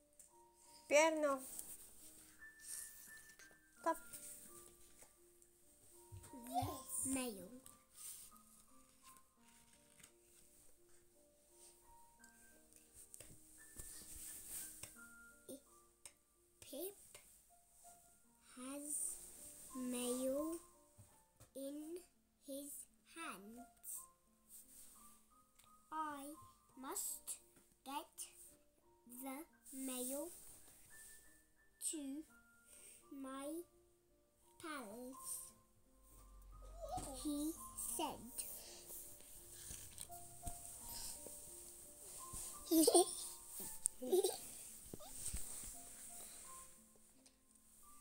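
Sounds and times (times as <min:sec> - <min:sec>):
soft piano music: 0:00.0 - 0:48.0.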